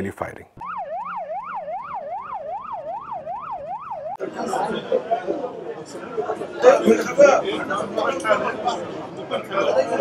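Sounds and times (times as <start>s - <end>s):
ambulance siren wailing: 0.6s - 5.3s
voices talking: 4.2s - 10.0s.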